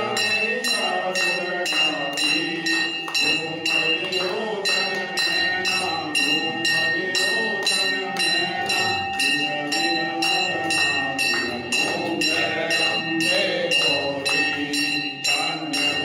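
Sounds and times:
group singing devotionally: 0.0s - 16.0s
temple bell ringing: 0.0s - 16.0s.

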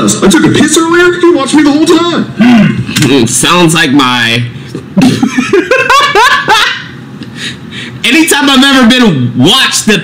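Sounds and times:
man laughing hard: 5.0s - 7.0s.

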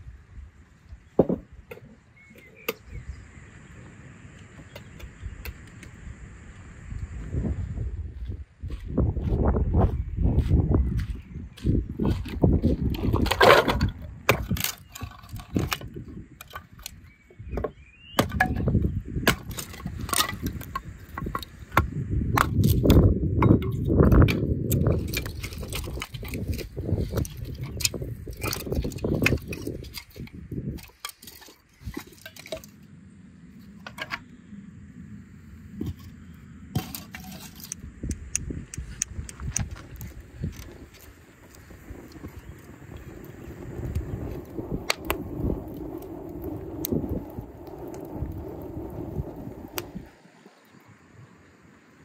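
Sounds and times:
firewood sticks knocking on gravel: 10.4s - 17.0s, 17.6s - 32.8s, 36.8s - 37.8s.

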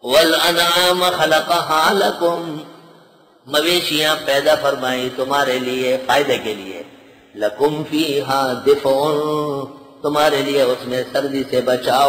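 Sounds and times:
man chanting a verse: 0.0s - 2.7s, 3.5s - 12.0s.

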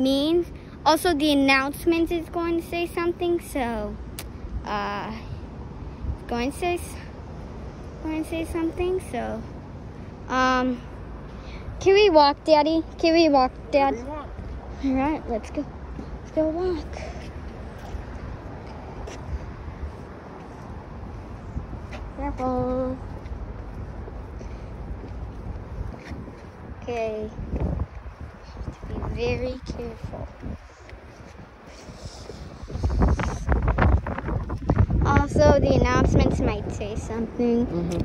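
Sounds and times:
wind buffeting microphone: 0.0s - 38.0s
faint footsteps: 12.9s - 35.2s.

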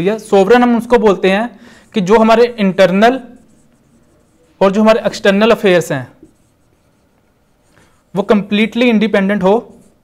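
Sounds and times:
marker pen on whiteboard: 0.0s - 10.0s.

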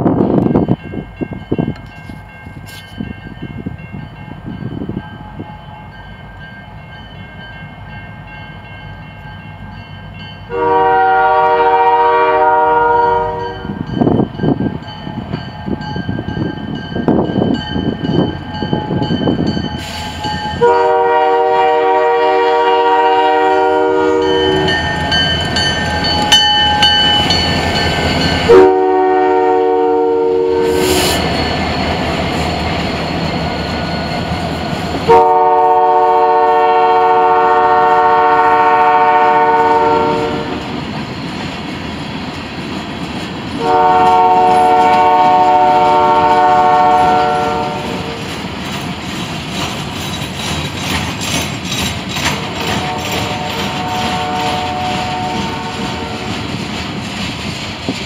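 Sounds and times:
train rumble: 0.0s - 58.0s
locomotive air horn blasts: 10.5s - 13.7s, 19.8s - 24.8s, 28.5s - 31.1s, 35.1s - 40.6s, 43.6s - 48.2s, 52.8s - 56.2s
freight cars rolling by: 47.8s - 58.0s.

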